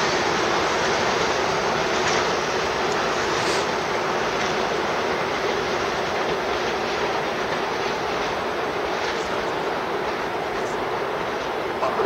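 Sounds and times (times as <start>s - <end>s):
train wheels rolling on rails: 0.0s - 12.0s.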